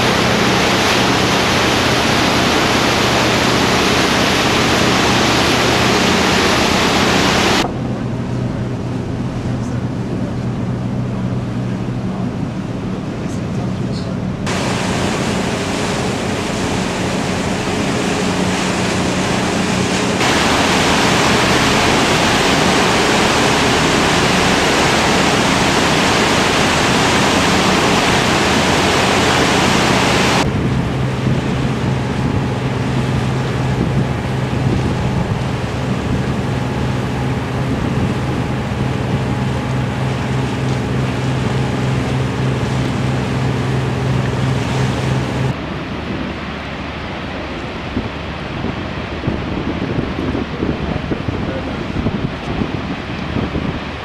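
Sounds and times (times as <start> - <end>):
boat engine drone: 0.0 - 54.0
rushing wind and water: 0.0 - 54.0
loud rushing hiss: 14.5 - 30.4.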